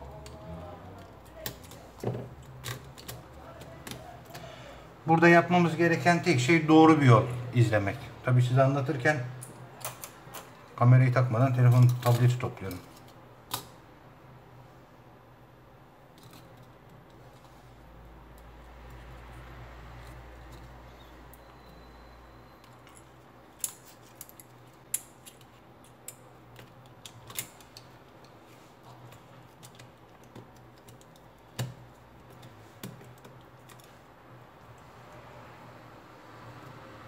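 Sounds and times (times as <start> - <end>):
plastic parts clicking and tapping: 22.9 - 33.9.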